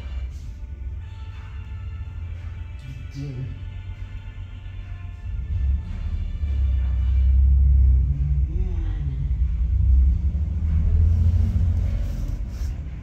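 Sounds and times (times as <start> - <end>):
deep steady rumble: 0.0 - 13.0
film soundtracks playing: 0.0 - 13.0.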